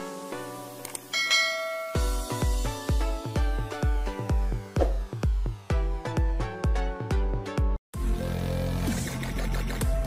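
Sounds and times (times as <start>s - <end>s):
bell chime: 1.1s - 2.6s.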